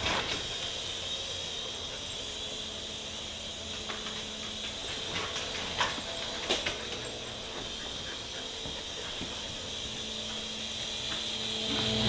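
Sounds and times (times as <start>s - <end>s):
toy helicopter motor whining: 0.0s - 12.0s.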